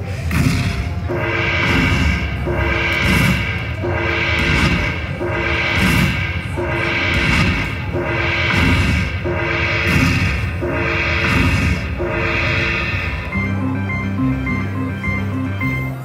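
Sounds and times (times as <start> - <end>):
slot machine bonus tally music: 1.1 - 16.0.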